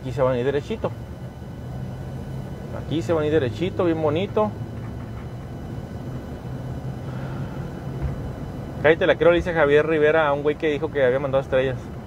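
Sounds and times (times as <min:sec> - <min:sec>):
truck engine and road noise: 0:00.0 - 0:12.0.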